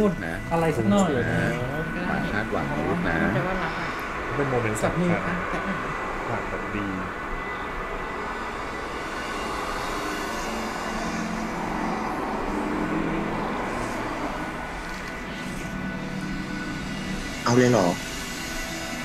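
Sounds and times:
soft background music: 0.0s - 19.0s.

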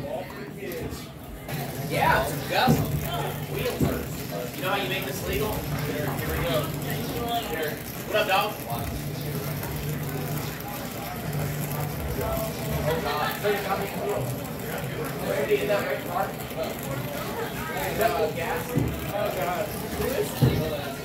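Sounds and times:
indistinct talking: 0.0s - 21.0s.

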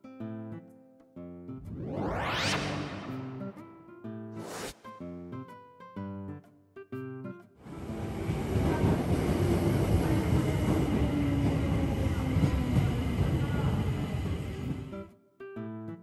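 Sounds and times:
train wheels rumbling on rails: 7.7s - 14.9s.

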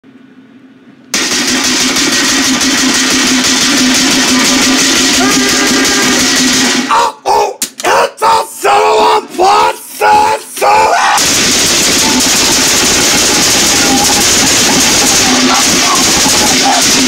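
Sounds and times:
machine whirring with low hum: 0.0s - 7.0s, 11.0s - 17.0s
short pitched voice-like sounds: 6.9s - 11.2s.

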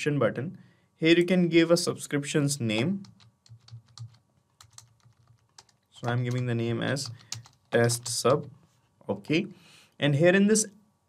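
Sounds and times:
faint keyboard typing: 2.7s - 8.6s.

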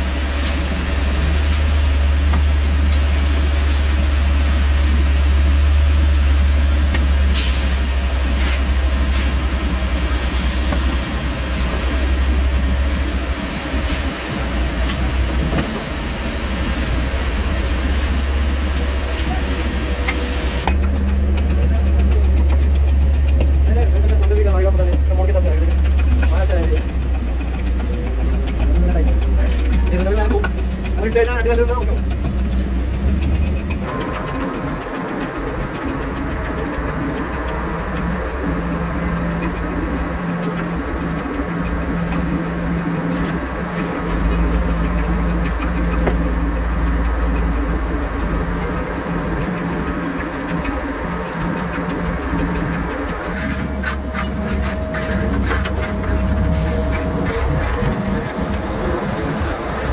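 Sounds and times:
low engine drone: 0.0s - 59.9s
concrete scooping clicks and scrapes: 0.1s - 59.9s.

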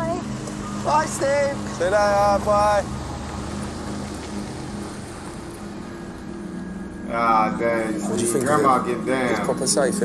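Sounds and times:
car engine running: 0.0s - 10.0s.

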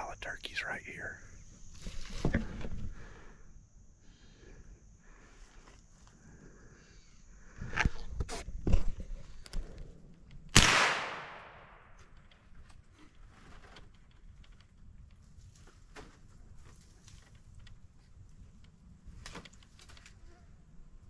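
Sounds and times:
gun handling thumps and rustles: 7.8s - 9.8s
gunshot crack: 10.6s - 11.8s.

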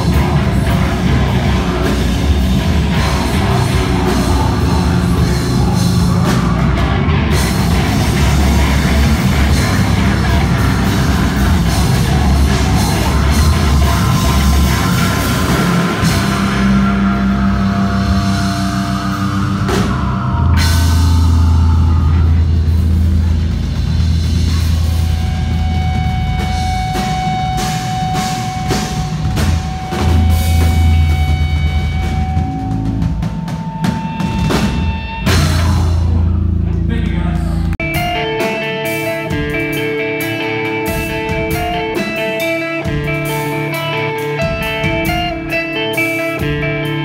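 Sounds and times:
heavy bass notes: 0.0s - 47.0s
live rock band playing: 0.0s - 47.0s.

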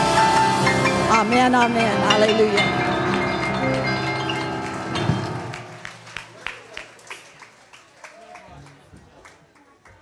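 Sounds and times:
live band holding a chord: 0.0s - 6.6s
scattered sharp claps: 5.5s - 10.0s.

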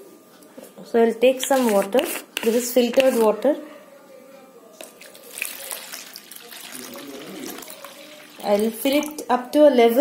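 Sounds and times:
water pouring into plastic container: 5.0s - 9.2s.

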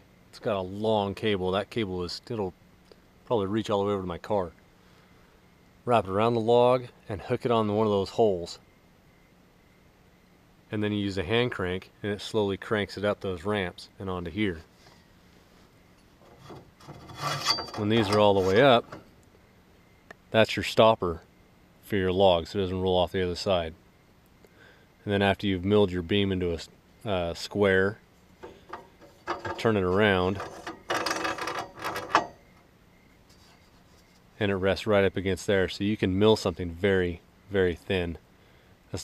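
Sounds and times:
knock and scrape of steel stopper: 16.2s - 19.1s, 28.4s - 32.4s
sharp metal clunk: 16.3s - 19.1s, 28.4s - 29.7s, 30.4s - 32.5s.

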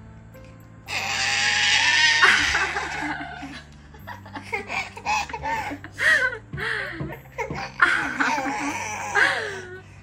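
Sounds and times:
baby squealing with laughter: 0.9s - 3.5s.

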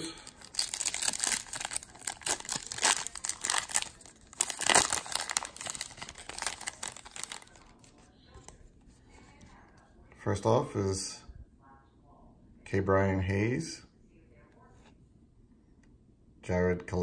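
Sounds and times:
foil wrapper tearing and crinkling: 0.0s - 7.9s.

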